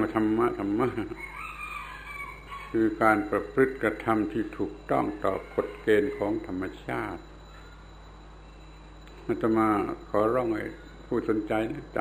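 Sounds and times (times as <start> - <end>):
distant bird call: 1.0 - 11.2.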